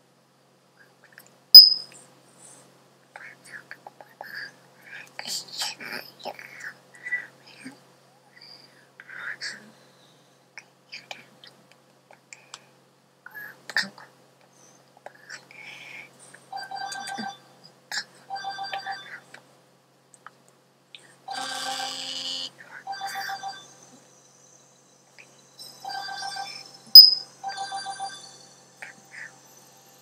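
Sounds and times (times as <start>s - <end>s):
trilling phone ringtone: 16.6s - 17.5s, 18.3s - 19.2s, 21.3s - 23.9s, 25.6s - 28.8s.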